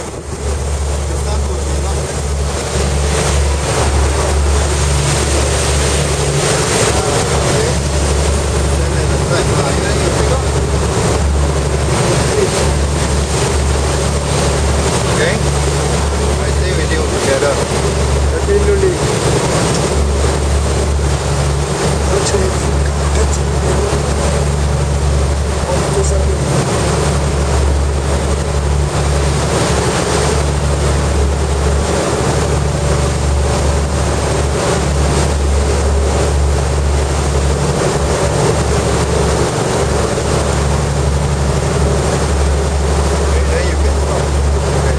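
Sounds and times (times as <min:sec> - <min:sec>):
motorboat engine droning: 0:00.0 - 0:44.9
wake water rushing along hull: 0:00.0 - 0:44.9.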